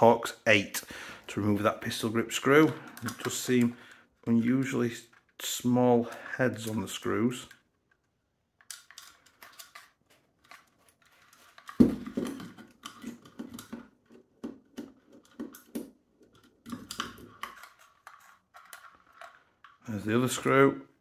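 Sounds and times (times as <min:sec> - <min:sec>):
plastic and metal parts clicking: 0:02.6 - 0:20.6.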